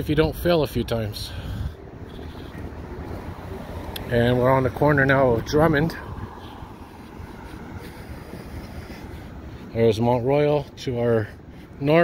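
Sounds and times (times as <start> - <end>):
distant traffic hum: 0.0 - 12.0.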